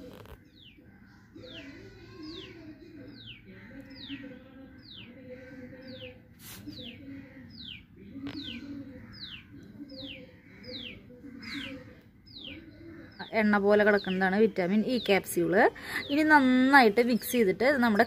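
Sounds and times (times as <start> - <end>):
bird chirping: 0.0 - 18.0.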